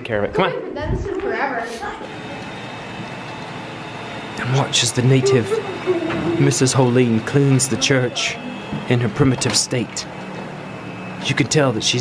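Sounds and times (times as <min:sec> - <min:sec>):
vacuum cleaner running: 0:02.0 - 0:12.0.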